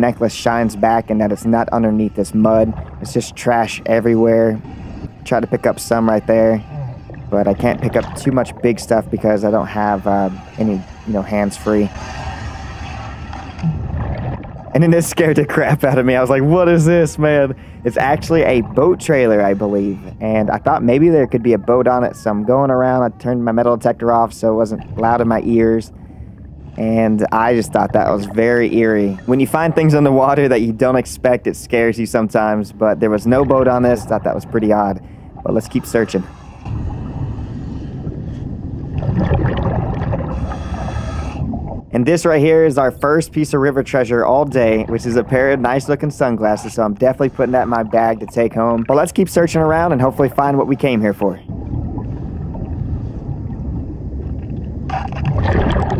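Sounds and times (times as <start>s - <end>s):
underwater rumble and hiss: 0.0s - 55.9s
diver breathing through regulator: 4.6s - 5.2s, 17.5s - 17.9s, 25.9s - 27.0s, 35.0s - 35.4s, 36.0s - 38.9s, 40.2s - 41.7s.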